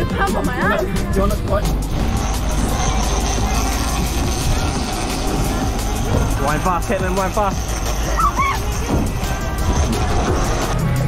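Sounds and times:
boat engine running: 0.0 - 11.0
wind on microphone: 0.0 - 11.0
wake rushing: 0.1 - 11.0.

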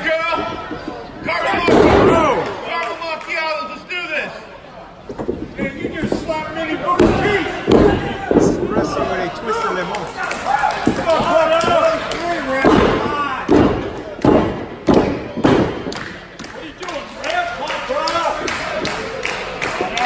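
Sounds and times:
crowd voices and shouts: 0.0 - 20.0.

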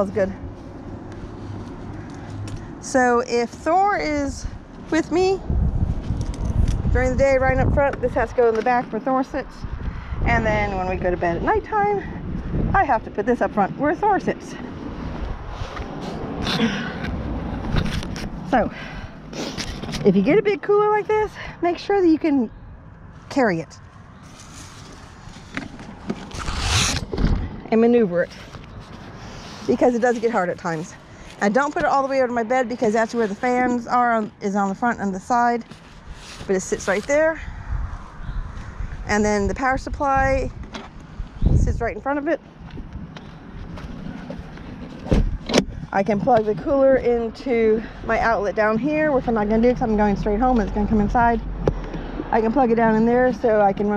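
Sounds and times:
microphone handling knocks and rustling: 15.2 - 18.6, 24.3 - 27.7, 42.6 - 46.8
sharp rustle or scrape: 24.2 - 27.2, 35.6 - 37.2
low steady rumble: 36.5 - 53.9.

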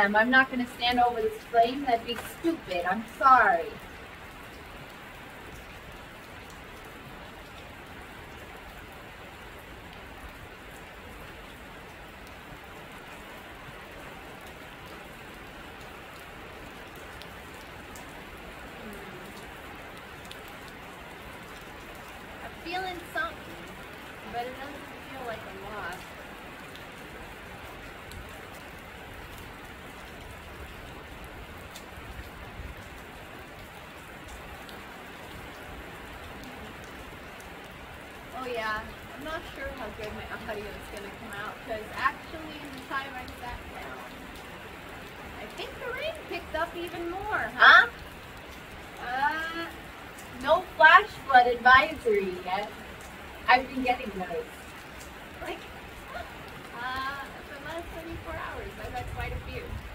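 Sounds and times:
heavy rain on metal roof: 0.0 - 59.9.

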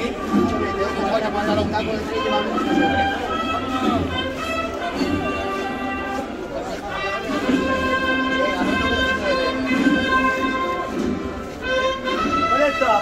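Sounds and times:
brass band playing: 0.0 - 13.0
people's voices: 0.0 - 13.0.

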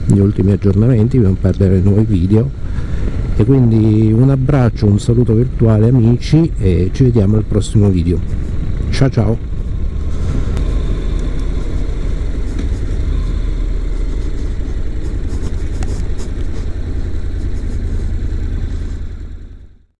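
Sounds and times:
motorcycle engine running: 0.0 - 20.0
road noise: 0.0 - 20.0.

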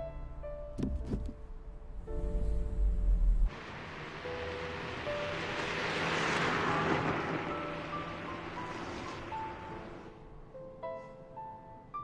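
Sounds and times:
soft piano background music: 0.0 - 12.0
car driving by: 2.2 - 10.2.

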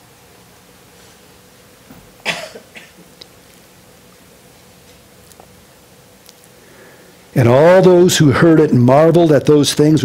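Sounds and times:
person coughing: 2.2 - 3.1.

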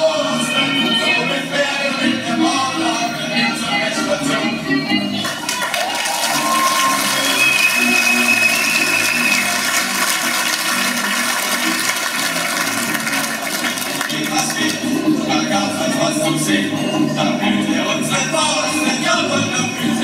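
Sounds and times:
faint whistling tones: 7.1 - 9.5.

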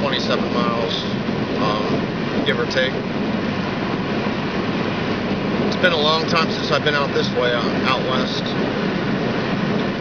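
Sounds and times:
car interior road and engine noise: 0.0 - 10.0.

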